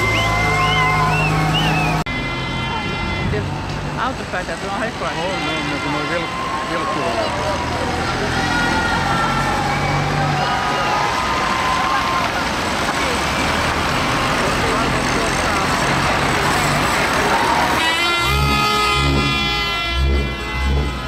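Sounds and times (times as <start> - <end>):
heavy truck engine driving past: 0.0 - 21.0
people calling out: 4.8 - 13.2.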